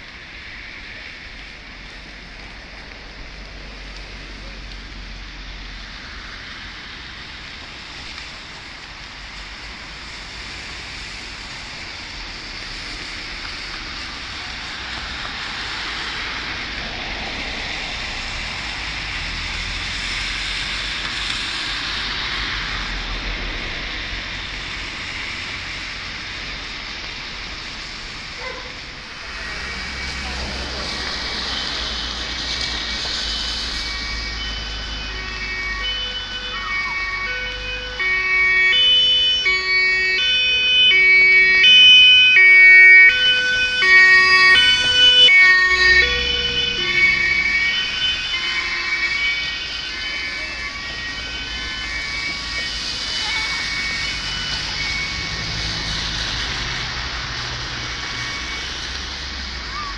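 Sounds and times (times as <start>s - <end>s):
two-tone emergency siren: 7.5s - 59.9s.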